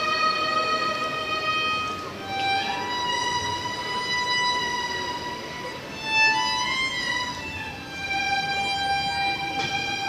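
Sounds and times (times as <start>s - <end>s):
violin holding long high note: 0.0s - 10.0s.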